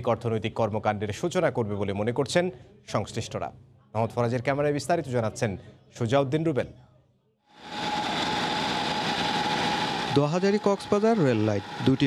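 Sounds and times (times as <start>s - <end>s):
small engines whining steadily: 7.6s - 12.0s.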